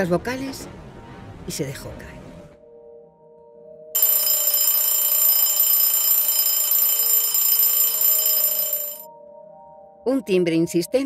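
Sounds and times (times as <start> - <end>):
alarm clock bell ringing: 4.0 - 9.1.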